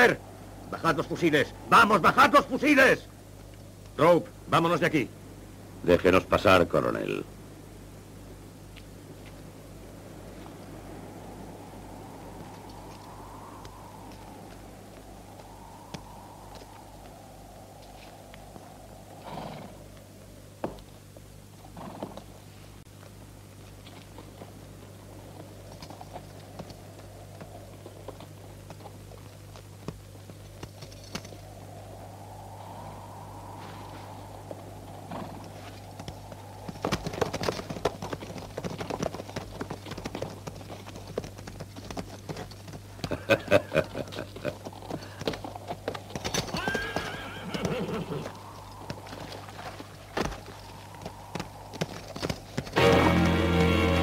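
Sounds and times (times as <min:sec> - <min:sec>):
low steady hum: 0:00.0 - 0:54.0
hooves clopping on dirt: 0:17.8 - 0:31.5, 0:34.4 - 0:54.0
horse whinnies: 0:19.2 - 0:19.8, 0:46.3 - 0:48.8.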